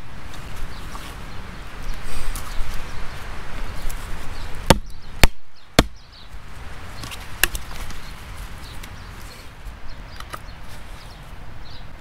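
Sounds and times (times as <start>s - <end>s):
handling and rustling: 6.8s - 11.2s.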